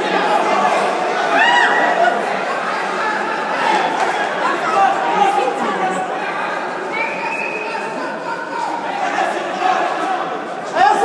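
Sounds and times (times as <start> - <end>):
spectators chattering in a hall: 0.0 - 11.0.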